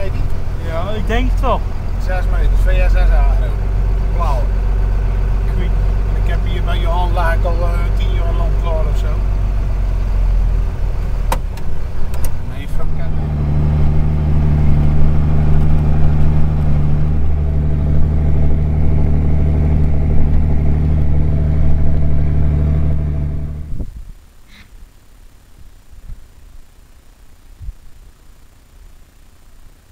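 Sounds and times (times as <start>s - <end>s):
tractor diesel engine under load: 0.0s - 23.9s
sharp clicks: 11.3s - 12.4s.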